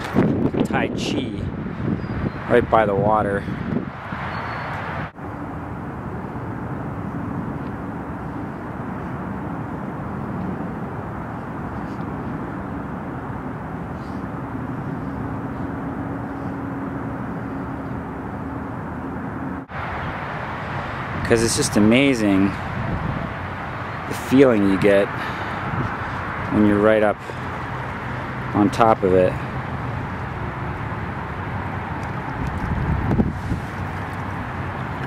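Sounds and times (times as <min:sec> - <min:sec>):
outdoor ambience: 0:00.0 - 0:35.0.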